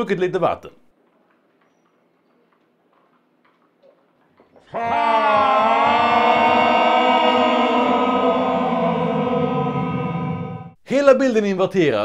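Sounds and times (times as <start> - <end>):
slowed deep scream of man: 4.7 - 10.8.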